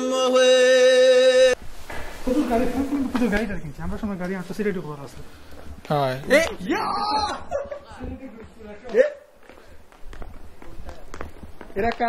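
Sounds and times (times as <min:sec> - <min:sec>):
person shouting: 0:06.6 - 0:07.5.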